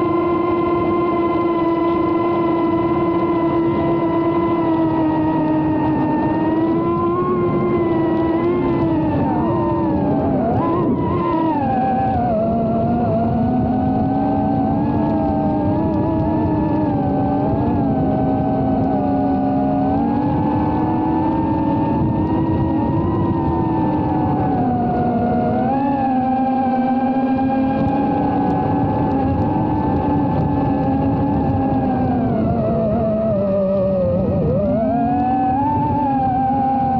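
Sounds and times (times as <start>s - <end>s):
drone motors whining: 0.0s - 36.9s.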